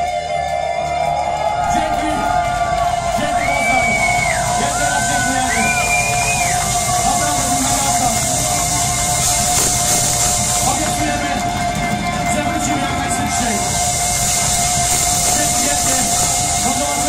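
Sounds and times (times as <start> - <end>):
heavy metal band playing live: 0.0 - 17.0
steady held tone: 1.6 - 17.0.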